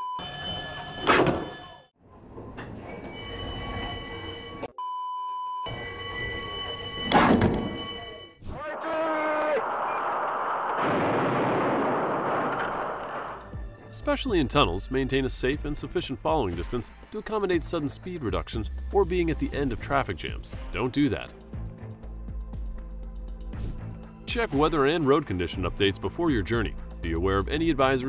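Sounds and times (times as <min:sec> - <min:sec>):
steady ringing tones: 0:03.0 - 0:04.7, 0:05.7 - 0:08.4.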